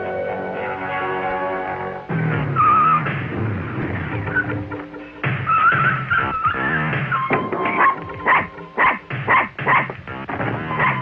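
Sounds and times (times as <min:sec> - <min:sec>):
small dog yapping: 0:07.7 - 0:09.9, 0:10.8 - 0:11.0.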